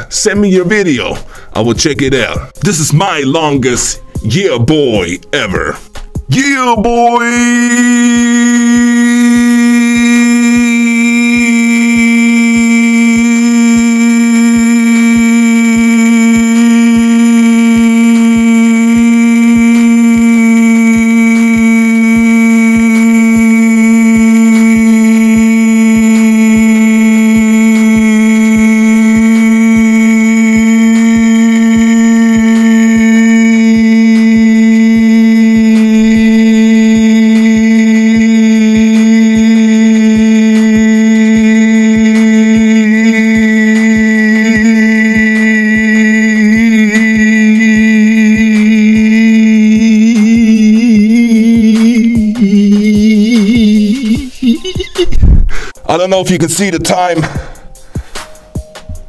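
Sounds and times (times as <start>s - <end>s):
man holding loud vocal note: 0.0s - 57.7s.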